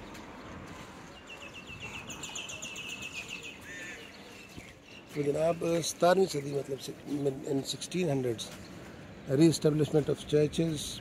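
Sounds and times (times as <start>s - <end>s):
bird chirping: 0.0s - 10.0s
low bird call: 1.2s - 5.1s.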